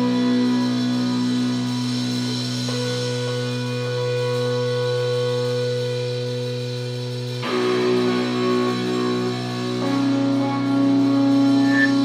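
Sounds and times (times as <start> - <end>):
metal band guitar drone: 0.0 - 12.0.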